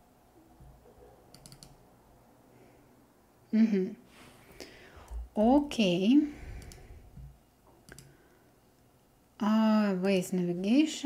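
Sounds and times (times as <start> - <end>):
computer mouse click: 1.3 - 1.8, 6.6 - 6.9, 7.8 - 8.1.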